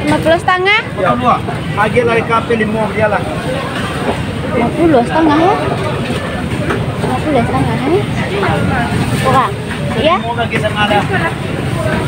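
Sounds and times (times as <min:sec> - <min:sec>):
market background rumble: 0:00.0 - 0:12.0
people talking and haggling: 0:00.0 - 0:12.0.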